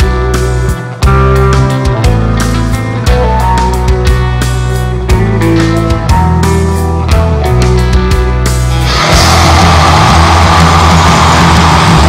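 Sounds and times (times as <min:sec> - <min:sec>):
heavy metal music: 0:00.0 - 0:12.0.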